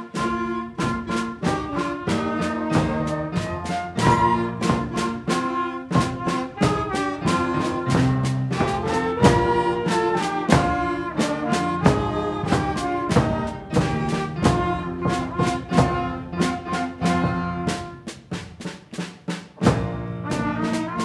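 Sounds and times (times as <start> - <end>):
concert band playing: 0.0 - 21.0
drum strokes: 0.0 - 21.0.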